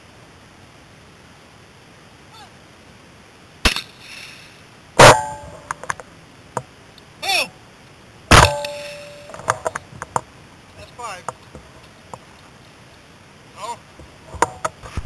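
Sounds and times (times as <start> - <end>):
shotgun shots: 3.6 - 4.4, 5.0 - 5.8, 8.3 - 9.5
metallic ringing: 5.0 - 5.9, 8.3 - 9.7.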